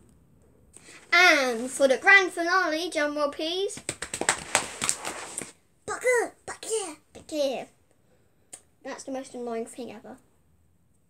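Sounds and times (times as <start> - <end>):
rapid tapping and rustling: 3.8 - 5.5.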